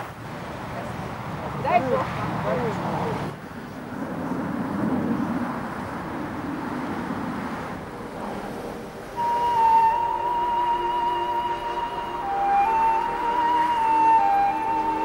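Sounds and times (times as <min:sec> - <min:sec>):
slow flute melody: 0:09.2 - 0:15.0.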